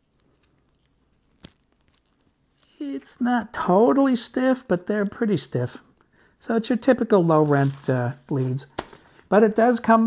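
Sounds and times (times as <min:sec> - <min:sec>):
man speaking: 0:02.7 - 0:10.0.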